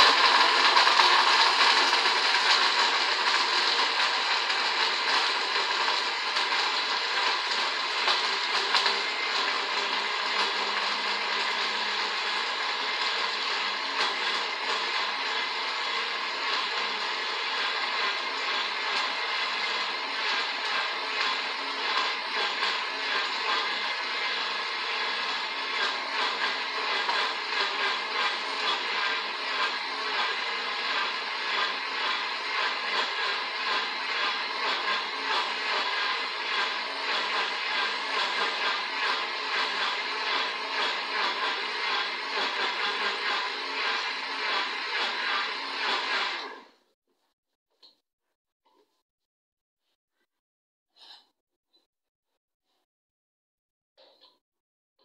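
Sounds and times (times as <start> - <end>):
electric blender running: 0.0 - 46.8.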